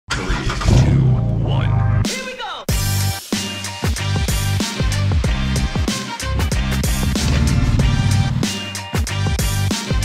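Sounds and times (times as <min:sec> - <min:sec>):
car engine starting and running: 0:00.1 - 0:02.0, 0:06.8 - 0:08.6
music: 0:00.1 - 0:10.0.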